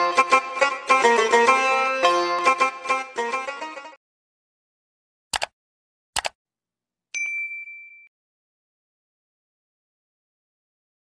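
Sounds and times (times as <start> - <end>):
notification bell ding: 7.2 - 8.1.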